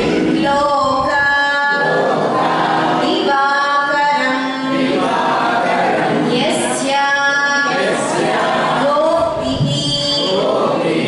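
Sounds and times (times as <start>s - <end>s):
woman singing unaccompanied: 0.0s - 2.0s, 2.9s - 5.0s, 6.3s - 7.8s, 8.8s - 10.5s.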